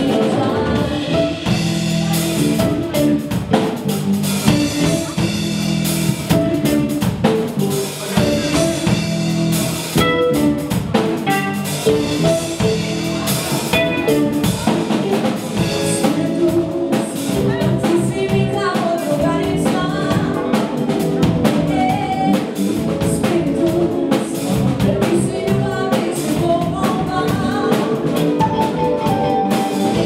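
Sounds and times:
drum kit and cymbals: 0:00.0 - 0:30.0
live soul band playing: 0:00.0 - 0:30.0.

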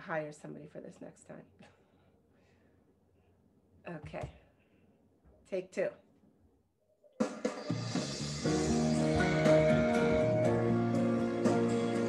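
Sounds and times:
instrumental song intro: 0:07.1 - 0:12.0.

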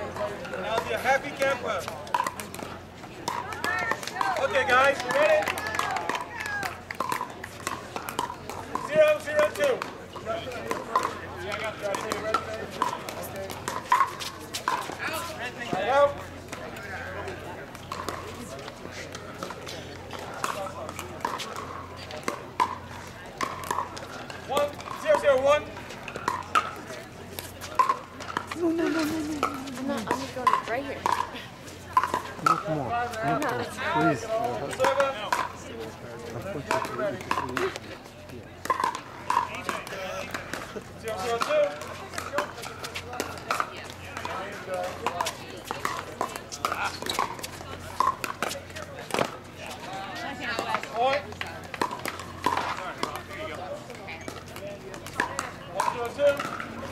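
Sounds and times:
voices talking: 0:00.0 - 0:56.9.

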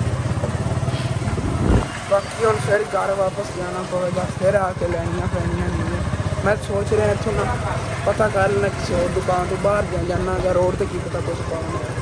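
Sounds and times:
motorcycle engine puttering: 0:00.0 - 0:12.0.

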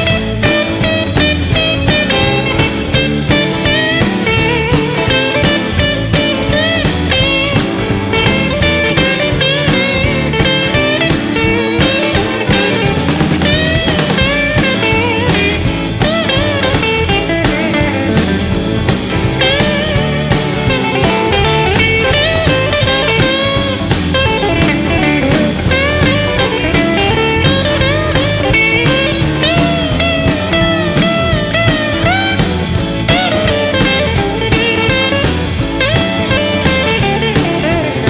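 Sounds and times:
blues band playing: 0:00.0 - 0:38.0
lead electric guitar: 0:00.0 - 0:38.0.

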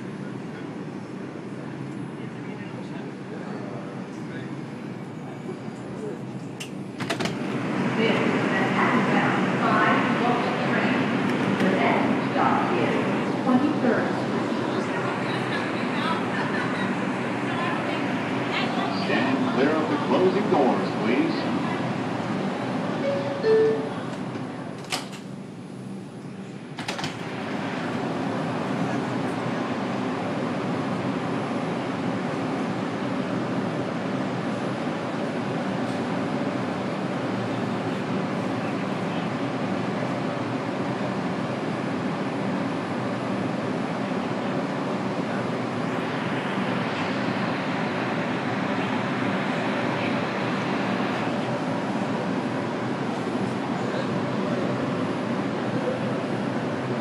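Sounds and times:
subway car running noise: 0:00.0 - 0:57.0
subway doors closing with knocks: 0:04.8 - 0:14.8, 0:21.4 - 0:57.0.

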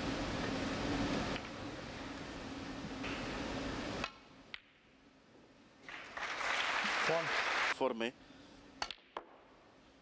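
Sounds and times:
audience applause: 0:05.9 - 0:07.8.

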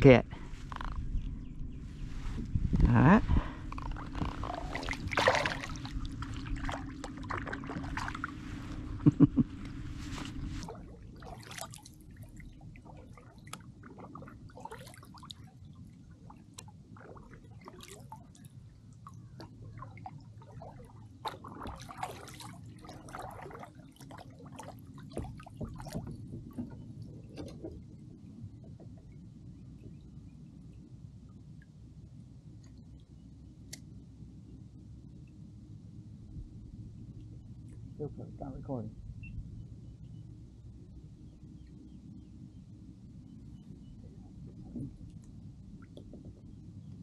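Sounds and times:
water splashing around kayaks: 0:03.2 - 0:30.1.

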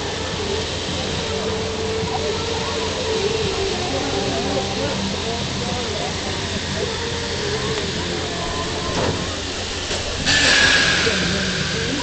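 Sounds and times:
locomotive rumbling: 0:00.0 - 0:12.0.

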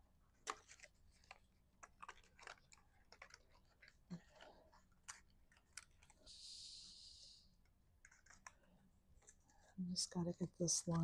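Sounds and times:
cardstock rustling and clicking: 0:00.4 - 0:06.2, 0:08.0 - 0:09.4.

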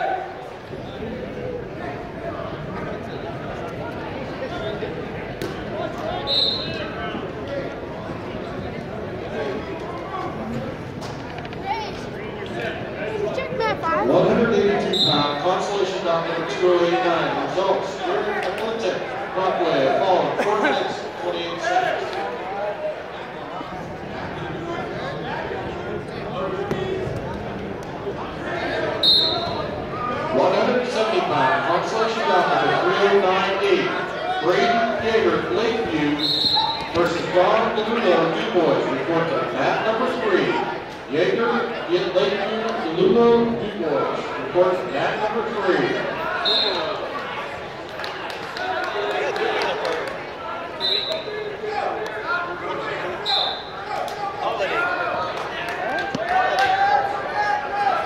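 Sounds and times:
crowd talking and shouting: 0:00.0 - 0:58.0
spectators chattering: 0:00.0 - 0:58.0
referee's whistle blast: 0:06.2 - 0:06.8, 0:29.0 - 0:29.6, 0:36.2 - 0:37.0, 0:46.4 - 0:46.9, 0:50.8 - 0:51.3, 0:53.2 - 0:53.8.

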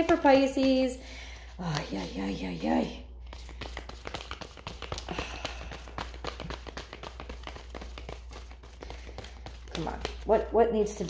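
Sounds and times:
cards being shuffled: 0:03.3 - 0:11.0.

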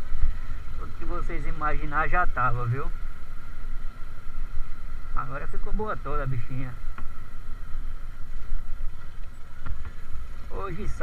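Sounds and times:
road rumble on cobblestones: 0:00.0 - 0:11.0.

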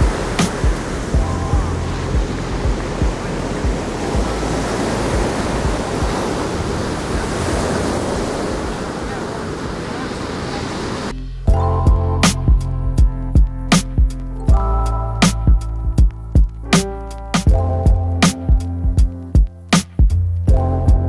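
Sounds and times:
background music: 0:00.0 - 0:06.7, 0:11.1 - 0:21.0
ocean surf breaking: 0:00.0 - 0:11.2.

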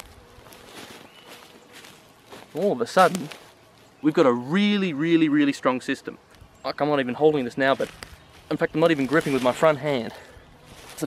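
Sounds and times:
feet shifting on grass: 0:00.0 - 0:04.3, 0:07.2 - 0:11.0.

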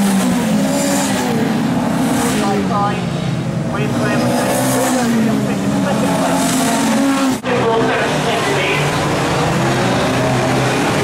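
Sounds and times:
race car engines running hard: 0:00.0 - 0:11.0.

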